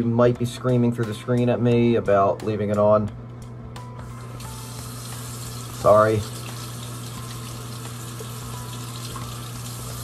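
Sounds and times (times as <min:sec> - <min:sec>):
tap water running into sink: 0:04.4 - 0:10.0.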